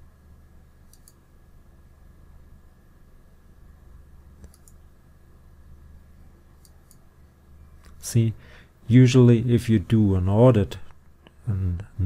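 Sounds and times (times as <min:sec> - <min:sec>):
steady low hum: 0:00.0 - 0:12.0
computer mouse clicks: 0:00.9 - 0:01.2, 0:04.4 - 0:04.8, 0:06.6 - 0:07.0.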